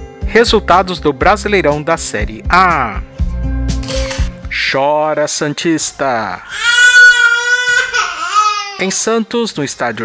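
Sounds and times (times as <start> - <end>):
high-pitched crying wail: 6.5 - 8.8.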